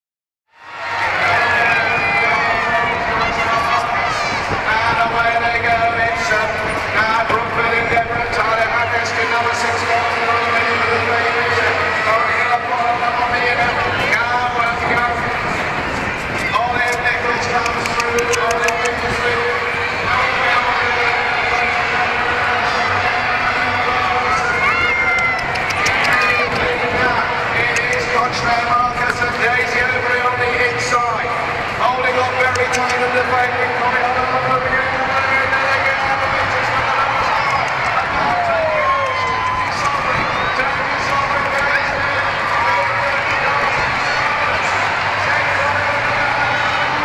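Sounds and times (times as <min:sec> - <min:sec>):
crowd noise: 0:00.5 - 0:47.0
commentator over public address: 0:00.7 - 0:47.0.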